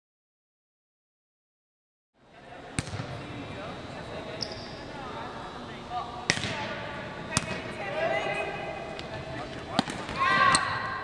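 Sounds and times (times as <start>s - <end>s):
ball bouncing on gym floor: 2.8s - 3.1s, 6.3s - 7.7s.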